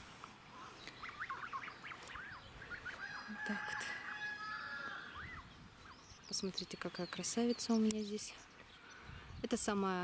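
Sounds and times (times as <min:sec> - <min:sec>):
geese peeping calls: 0:00.5 - 0:07.0.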